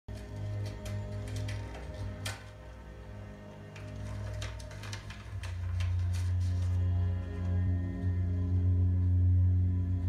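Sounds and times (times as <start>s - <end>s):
soft low sustained music: 0.1s - 10.0s.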